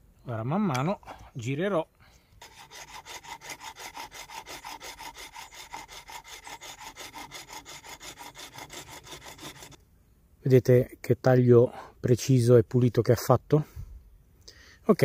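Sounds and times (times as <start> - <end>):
small saw cutting a branch: 2.4 - 9.8.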